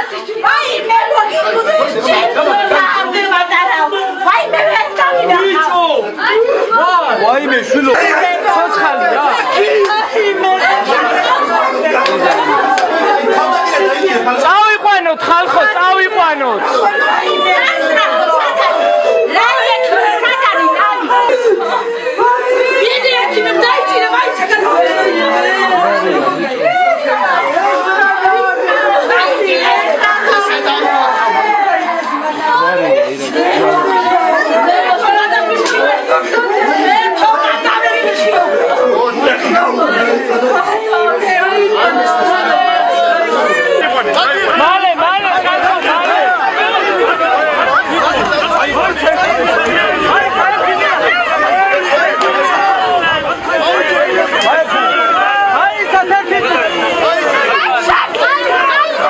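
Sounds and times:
loud babble of voices: 0.0 - 59.0
people talking over one another: 0.0 - 59.0.

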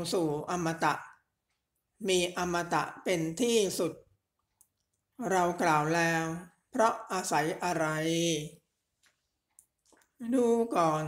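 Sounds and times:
person reading aloud: 0.0 - 9.0, 9.6 - 11.0.

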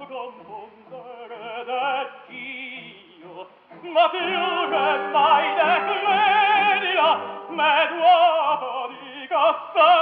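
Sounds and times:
operatic singing: 0.0 - 10.0
orchestra playing: 0.2 - 8.3.

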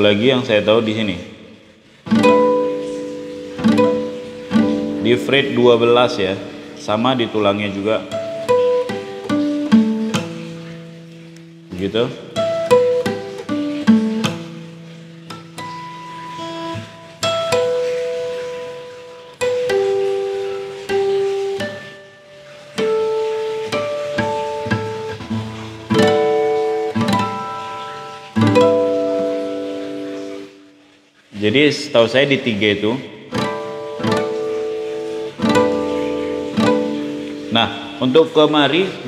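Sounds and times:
acoustic guitar harmonics ringing: 0.0 - 39.0.

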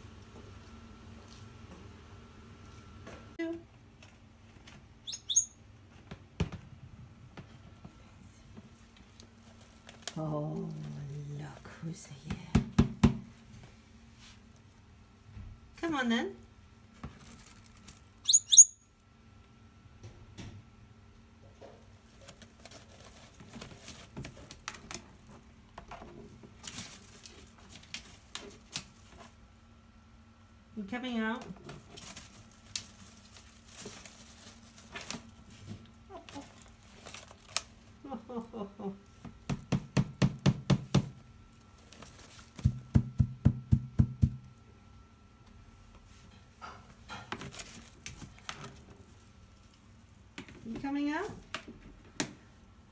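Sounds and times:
parrot high-pitched calls: 5.0 - 5.6, 18.2 - 18.9
paper crackling: 31.8 - 37.9.

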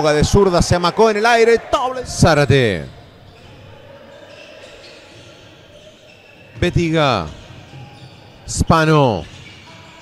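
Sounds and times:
echoing hall sound: 0.0 - 10.0.

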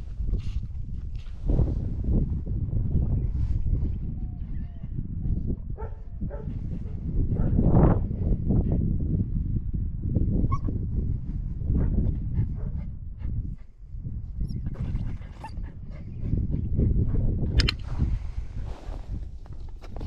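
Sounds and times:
steady low rumble: 0.0 - 19.8.

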